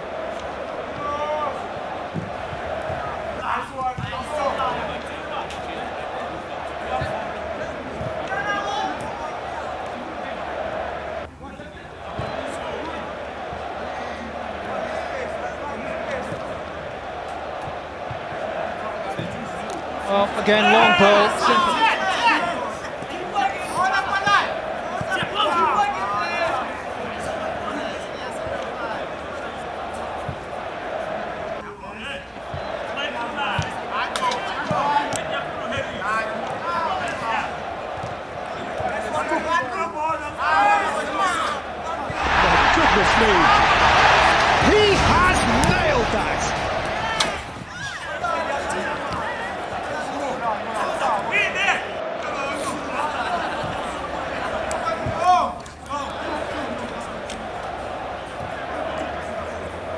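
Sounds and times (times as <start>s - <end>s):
players calling out: 0.0s - 59.9s
men shouting: 12.0s - 31.6s, 32.7s - 55.3s.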